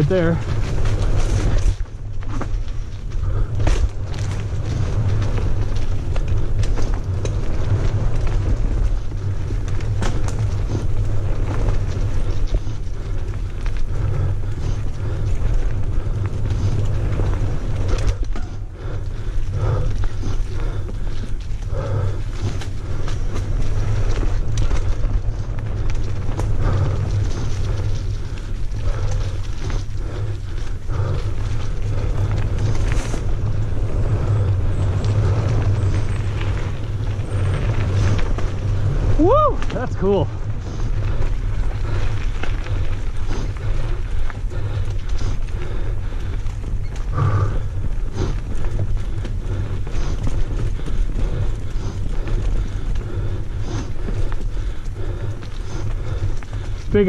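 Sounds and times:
bike rattling and knocking: 0:00.0 - 0:57.0
tyres rolling over dirt and leaves: 0:00.0 - 0:57.0
wind rumble on microphone: 0:00.0 - 0:57.0.

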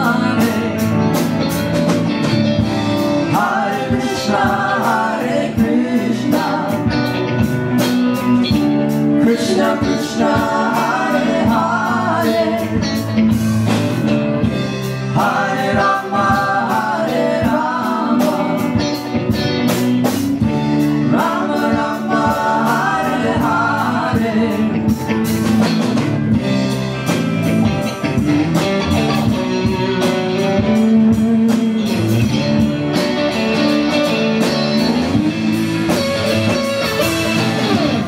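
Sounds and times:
person singing: 0:00.0 - 0:01.3, 0:09.1 - 0:13.2, 0:21.0 - 0:25.1
live band music: 0:00.0 - 0:38.0.

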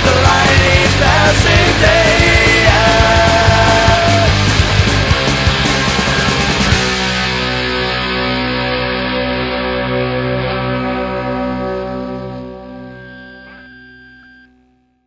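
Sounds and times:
distorted electric guitar chord ringing: 0:00.0 - 0:15.0.

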